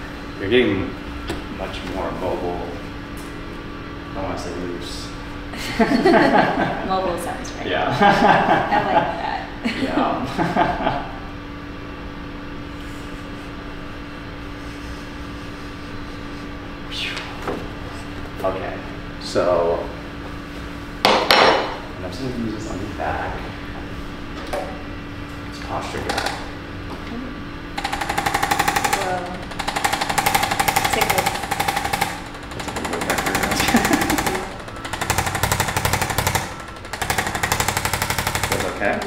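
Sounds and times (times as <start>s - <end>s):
electric massager hammering: 21.0s - 21.9s, 25.6s - 27.0s, 27.7s - 39.0s.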